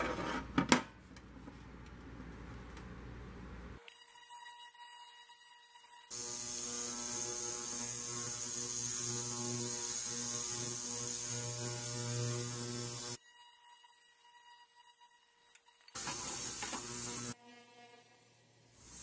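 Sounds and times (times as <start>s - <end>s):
ultrasonic cleaner humming: 16.0s - 17.4s.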